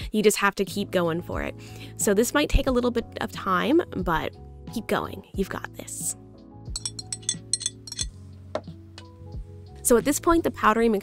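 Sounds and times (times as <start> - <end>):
background music: 0.0 - 11.0
metal whisk clinking in ceramic bowl: 6.8 - 8.1.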